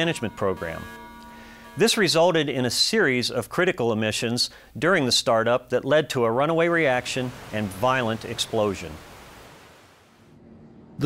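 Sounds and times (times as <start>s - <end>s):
faint rushing noise: 6.7s - 11.0s.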